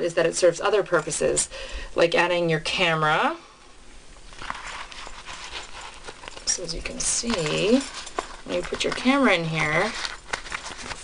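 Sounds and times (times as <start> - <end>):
wallet rustling: 4.2 - 11.0.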